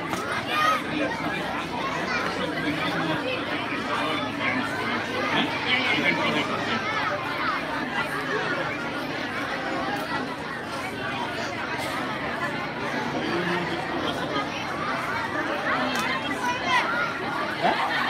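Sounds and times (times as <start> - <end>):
children chattering: 0.0 - 18.0.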